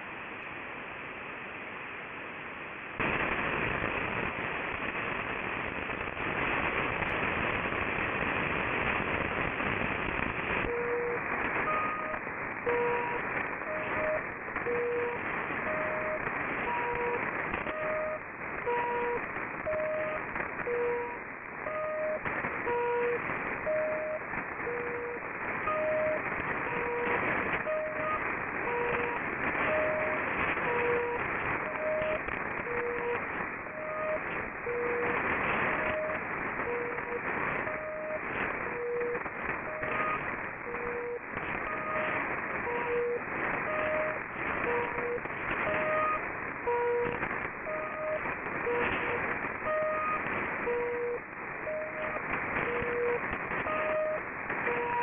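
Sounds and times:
radio static hiss and crackle: 0.0 - 55.0.

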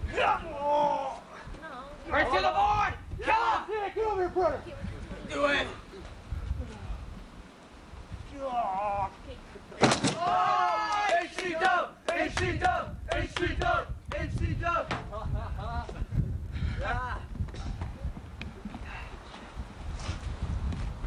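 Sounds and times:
young men whooping and yelling: 0.0 - 1.3, 2.1 - 4.6, 10.2 - 15.0
wooden board crashing: 9.8 - 10.4.

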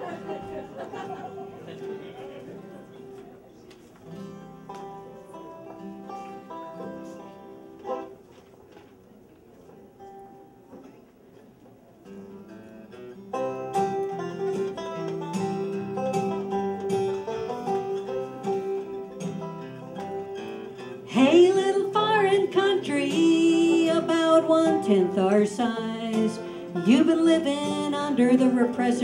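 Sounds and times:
acoustic guitar and banjo playing: 0.0 - 8.4, 12.0 - 29.0.

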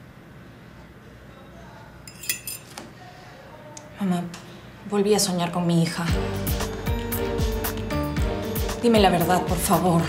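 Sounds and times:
cutlery clinking against dishes: 2.1 - 2.8.

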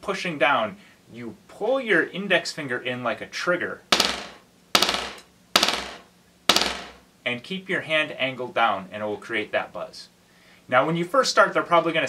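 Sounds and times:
drumstick buzz strokes on practice pad: 3.9 - 7.0.

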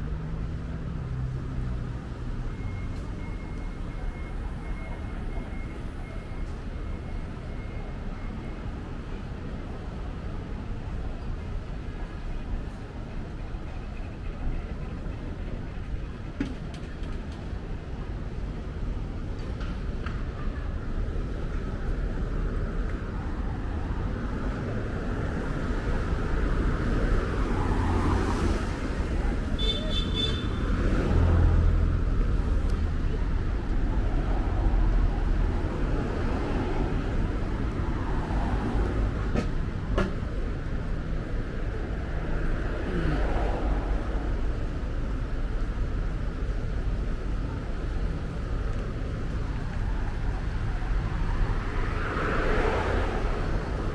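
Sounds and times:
car and bus engines rumbling: 0.0 - 53.9.

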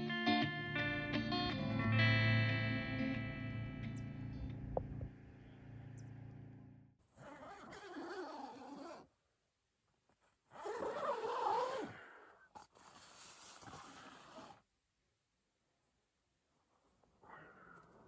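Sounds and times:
guitar music: 0.0 - 6.6.

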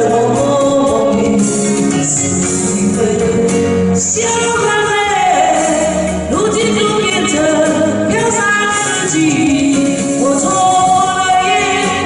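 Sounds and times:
instrumental backing track: 0.0 - 12.0
woman singing into microphone: 0.0 - 12.0.

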